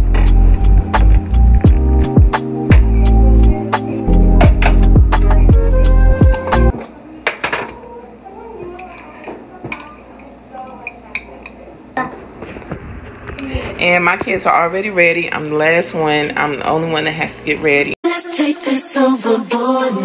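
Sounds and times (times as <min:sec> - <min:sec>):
music with deep sliding bass: 0:00.0 - 0:06.8.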